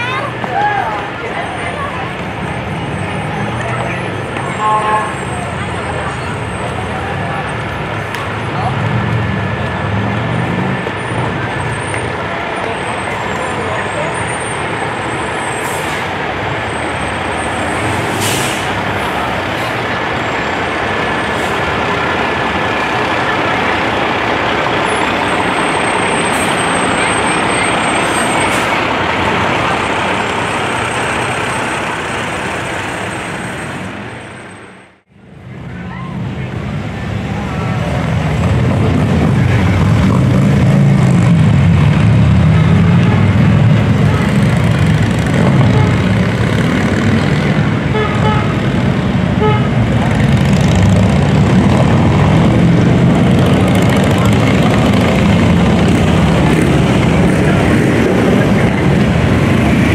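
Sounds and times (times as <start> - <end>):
people's voices: 0.0 - 34.2, 35.2 - 59.9
fire engine diesel engines: 0.0 - 59.9
air-brake hiss: 18.0 - 18.8.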